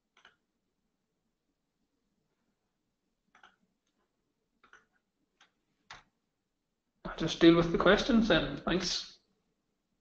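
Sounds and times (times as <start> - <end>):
computer mouse clicks: 0.1 - 0.5, 3.3 - 6.1.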